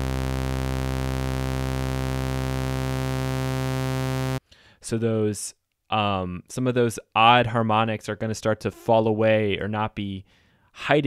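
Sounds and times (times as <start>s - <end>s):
synthesizer sawtooth low note: 0.0s - 4.4s.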